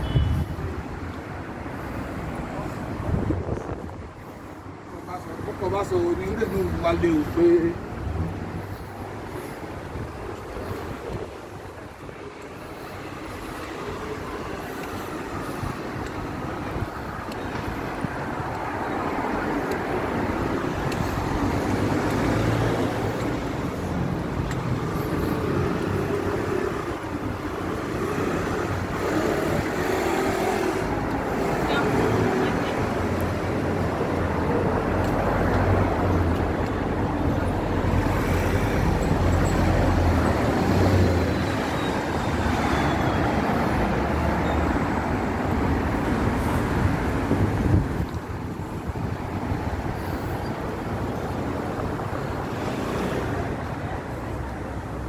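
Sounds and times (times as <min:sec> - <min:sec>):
cars passing: 0:00.0 - 0:55.0
engines rumbling: 0:00.0 - 0:55.0
tyres hissing on wet road: 0:12.4 - 0:26.9, 0:27.5 - 0:36.2, 0:36.9 - 0:55.0.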